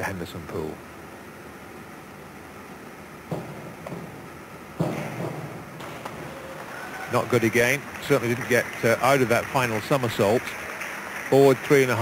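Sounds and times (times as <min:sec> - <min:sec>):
crowd and pool hall ambience: 0:00.0 - 0:12.0
diving springboard knocking: 0:03.3 - 0:08.3.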